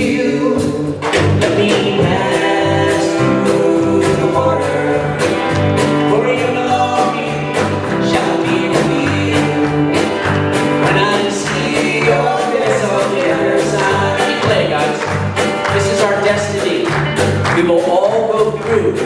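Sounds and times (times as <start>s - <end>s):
bass guitar: 0.0s - 19.0s
electric guitar: 0.0s - 19.0s
man singing: 0.0s - 19.0s
steady drum beat: 0.0s - 19.0s.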